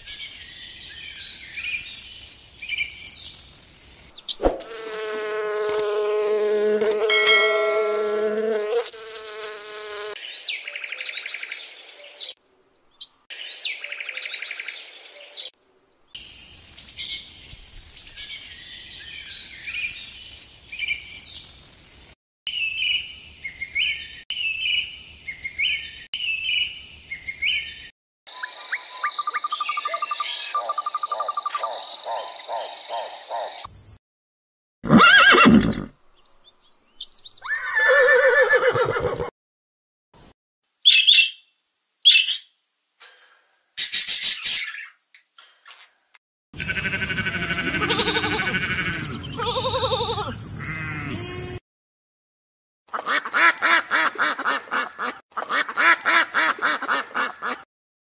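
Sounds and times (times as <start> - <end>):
insect buzzing: 0.0 - 10.2, 16.2 - 22.2, 46.6 - 51.6
high repeated insect chirping: 0.2 - 4.1.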